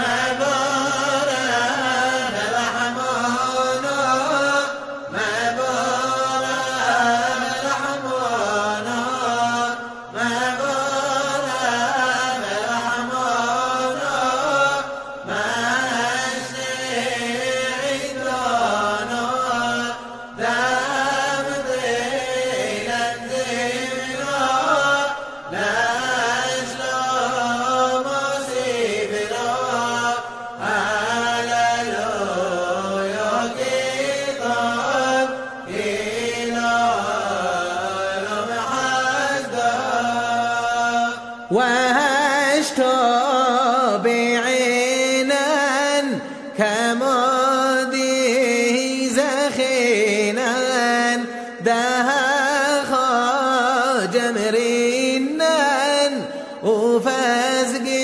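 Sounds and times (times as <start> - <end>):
man chanting unaccompanied: 0.0 - 58.0.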